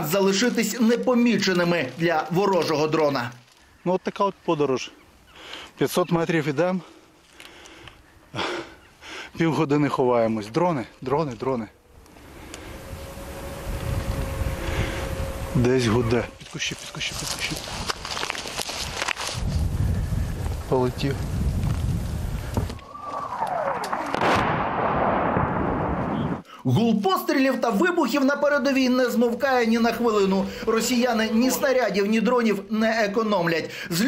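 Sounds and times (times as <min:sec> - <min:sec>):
incoming shell whistling: 0:22.6 - 0:26.4
loud explosion: 0:22.8 - 0:26.4.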